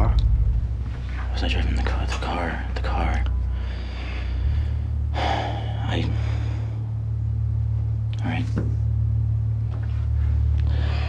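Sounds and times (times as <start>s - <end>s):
steady low hum: 0.0s - 11.0s
man breathing out heavily: 3.5s - 6.9s.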